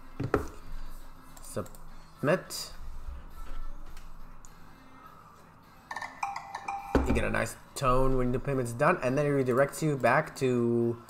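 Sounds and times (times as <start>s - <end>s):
payment success chime: 5.9s - 7.4s.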